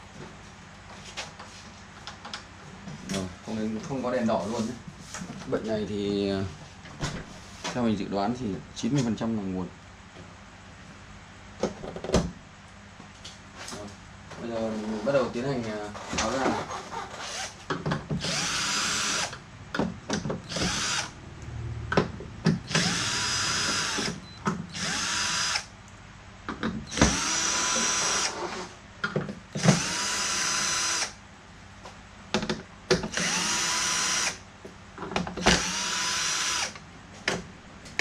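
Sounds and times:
electric screwdriver whining: 18.2s - 19.4s, 20.4s - 21.2s, 22.7s - 25.7s, 26.9s - 28.4s, 29.6s - 31.2s, 33.1s - 34.4s, 35.4s - 36.8s.

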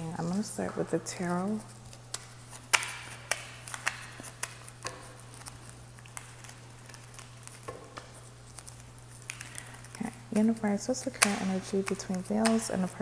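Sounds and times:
cards being shuffled: 0.2s - 13.0s
sharp card clicks: 2.1s - 8.1s.

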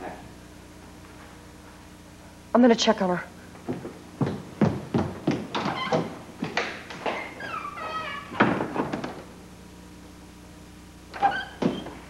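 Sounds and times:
footsteps: 0.7s - 2.0s, 3.5s - 9.3s
door creak falling in pitch: 5.6s - 6.2s, 7.0s - 9.2s, 11.1s - 12.0s.

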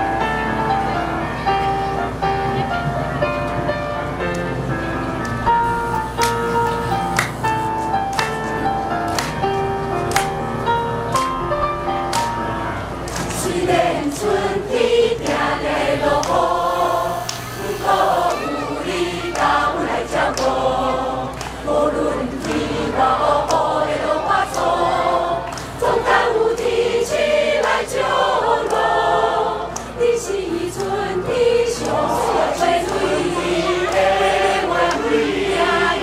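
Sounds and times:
mixed choir singing: 13.1s - 36.0s.

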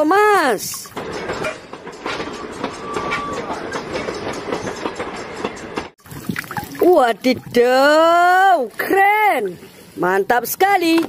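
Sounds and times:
train wheels clicking on rails: 0.0s - 6.0s.

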